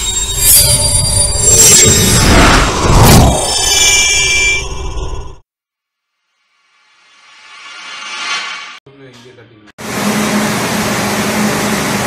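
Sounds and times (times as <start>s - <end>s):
swooshing sweeps: 7.0s - 8.8s.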